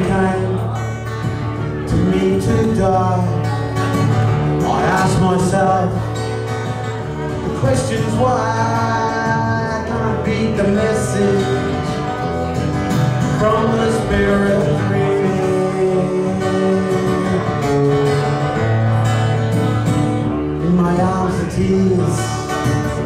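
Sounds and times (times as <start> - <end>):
man singing: 0.0 - 6.6, 7.2 - 18.6, 20.4 - 23.0
strummed acoustic guitar: 0.0 - 23.0.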